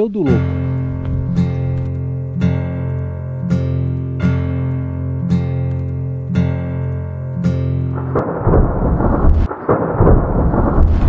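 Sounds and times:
acoustic guitar music: 0:00.0 - 0:10.5
loud thunder rumble: 0:08.0 - 0:11.0.

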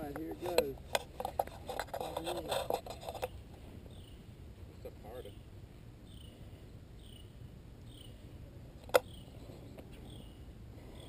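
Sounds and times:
crackling clicking microphone noise: 0:00.0 - 0:04.0, 0:08.8 - 0:10.1.

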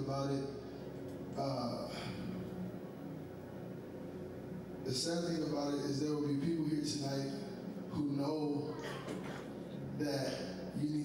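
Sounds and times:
soft low hum: 0:00.0 - 0:11.0.

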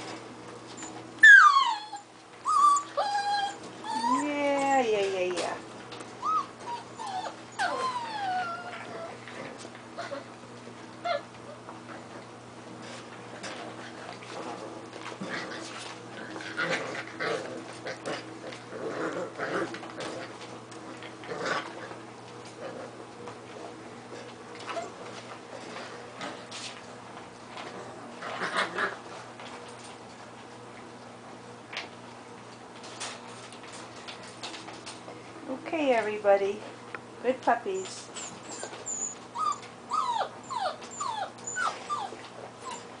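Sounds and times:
puppies vocalizing: 0:00.8 - 0:04.8, 0:06.1 - 0:10.4, 0:38.0 - 0:43.0.

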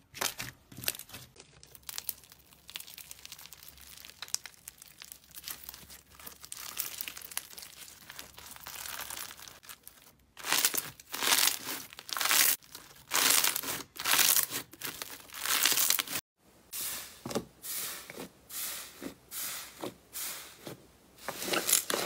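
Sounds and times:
slime crackling: 0:00.2 - 0:16.2.

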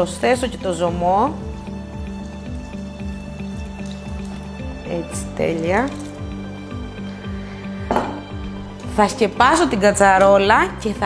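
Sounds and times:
background music with low bass: 0:00.0 - 0:11.0.

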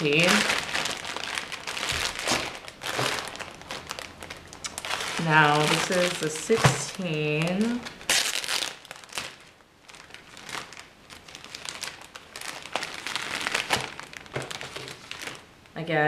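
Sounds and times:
plastic bag crinkling: 0:00.0 - 0:15.8.

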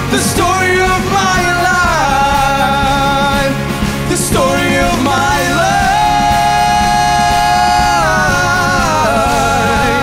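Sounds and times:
band backing: 0:00.0 - 0:10.0
man singing long high note: 0:00.1 - 0:10.0.

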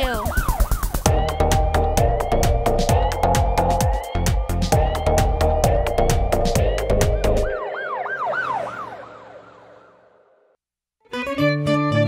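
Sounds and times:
song with drums: 0:00.0 - 0:07.5
police siren yelp: 0:00.0 - 0:10.5.

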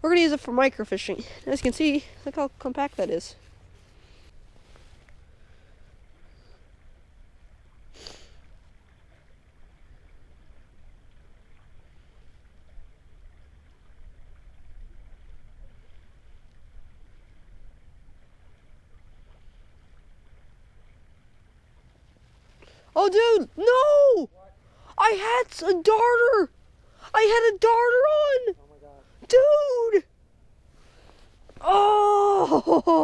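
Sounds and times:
soft hiss: 0:00.0 - 0:25.0, 0:30.1 - 0:31.7
short rustle: 0:02.8 - 0:05.6.

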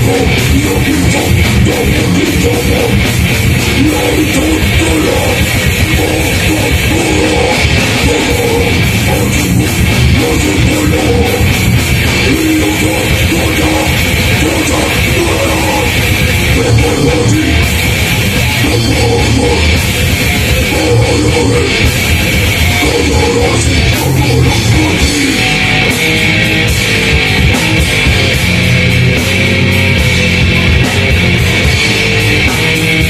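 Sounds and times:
person singing into a microphone: 0:00.0 - 0:26.0
bass guitar: 0:00.0 - 0:33.0
distorted electric guitar riffing: 0:00.0 - 0:33.0
drum kit: 0:00.0 - 0:33.0.

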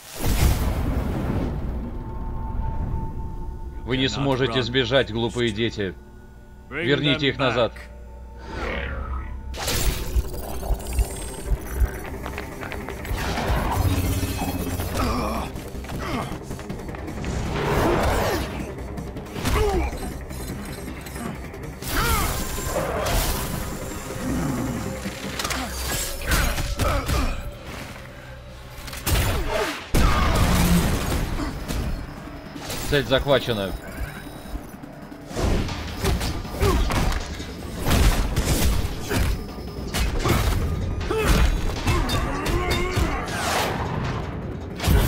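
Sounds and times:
film score music: 0:00.1 - 0:45.0.

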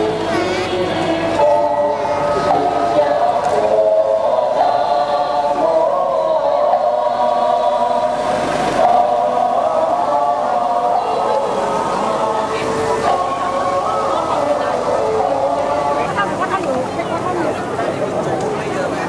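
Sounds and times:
many voices chanting in unison: 0:00.0 - 0:18.9.

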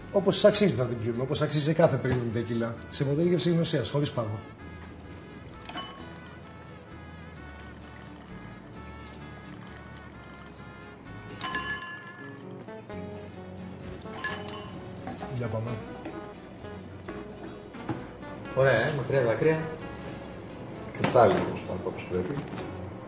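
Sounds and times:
background music: 0:00.0 - 0:23.0
glasses clinking: 0:05.6 - 0:06.2, 0:11.3 - 0:12.6, 0:14.0 - 0:18.0
bright ringing: 0:05.6 - 0:06.3, 0:11.3 - 0:12.6, 0:14.0 - 0:17.6
liquid pouring into glasses: 0:13.9 - 0:17.6.

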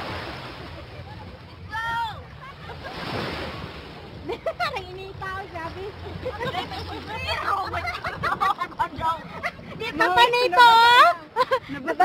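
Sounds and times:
sea water lapping and sloshing: 0:00.0 - 0:12.0.

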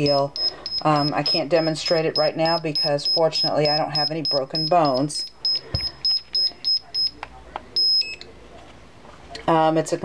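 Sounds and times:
long beep: 0:00.1 - 0:07.1.

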